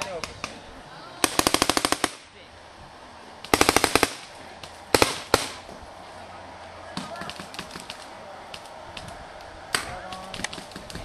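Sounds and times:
paintball markers firing: 7.0s - 11.0s.

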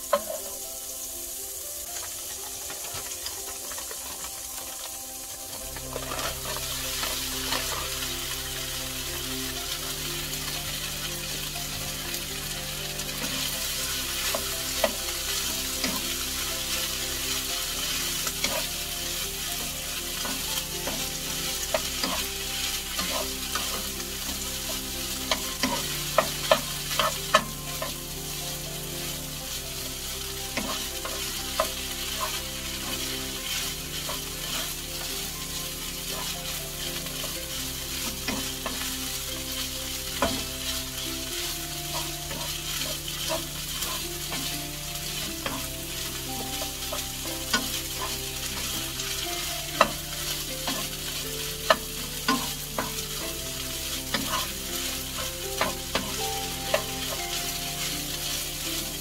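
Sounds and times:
rice sizzling in butter: 0.0s - 59.0s
wooden spatula scraping pan: 1.9s - 59.0s.

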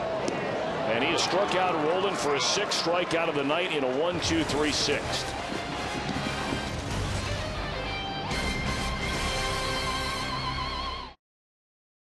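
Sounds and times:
music with held chords: 6.3s - 11.2s.

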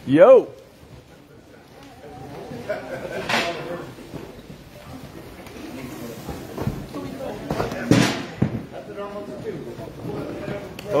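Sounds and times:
men chatting: 0.0s - 4.4s, 6.9s - 11.0s.

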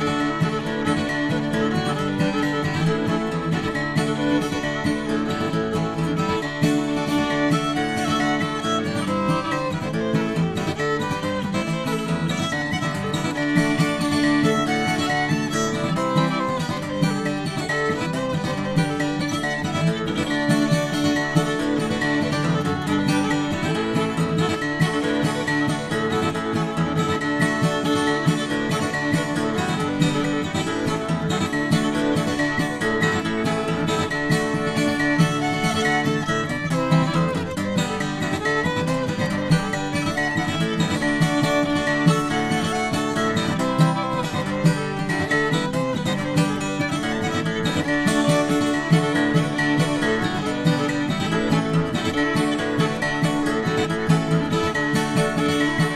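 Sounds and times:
acoustic guitar rhythm: 0.0s - 55.9s
fiddle melody: 0.0s - 55.9s.

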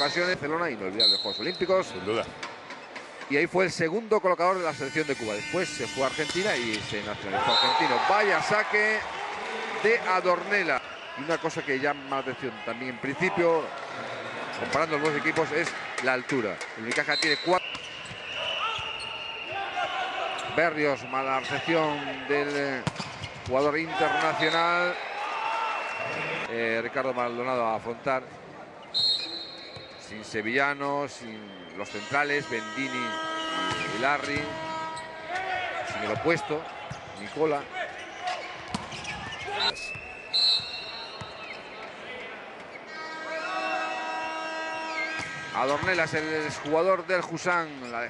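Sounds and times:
arena crowd noise: 0.0s - 48.0s
whistle blast: 1.0s - 1.7s, 7.4s - 8.0s, 17.1s - 19.7s, 28.9s - 30.0s, 31.3s - 35.3s, 39.6s - 41.3s, 42.9s - 45.7s
crowd voices: 5.2s - 27.2s
volleyball strikes: 22.8s - 23.6s, 38.6s - 41.3s.

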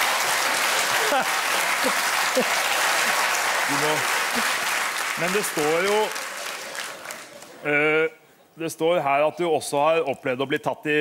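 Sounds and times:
audience applause: 0.0s - 7.6s.

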